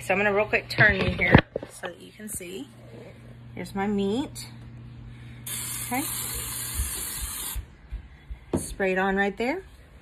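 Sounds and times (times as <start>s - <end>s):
oil mister spraying hiss: 5.5s - 7.6s.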